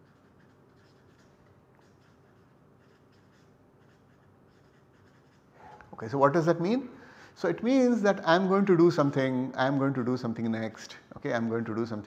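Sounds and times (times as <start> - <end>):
marker scratching on paper: 0.0 - 6.1.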